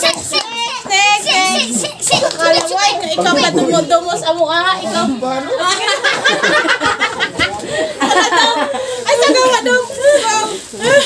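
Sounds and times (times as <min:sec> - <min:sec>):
young people laughing: 0:05.4 - 0:11.0.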